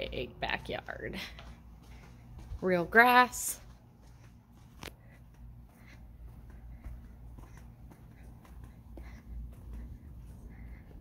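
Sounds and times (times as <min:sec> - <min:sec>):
footsteps scuffing on concrete: 0:00.6 - 0:11.0.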